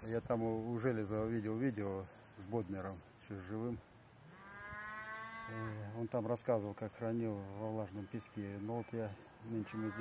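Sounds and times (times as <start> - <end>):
cow mooing: 4.3 - 5.8, 9.6 - 10.0.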